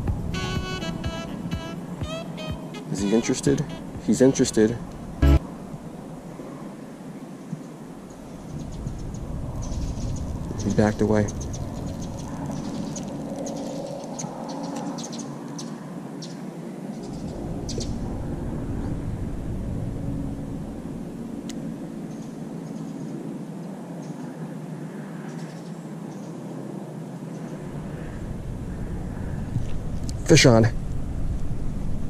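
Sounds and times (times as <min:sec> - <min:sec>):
outdoor background rumble: 0:00.0 - 0:06.3, 0:17.0 - 0:23.9.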